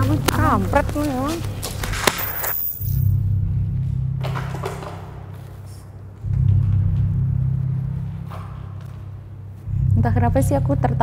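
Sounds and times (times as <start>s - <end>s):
dark droning background music: 0.0s - 11.0s.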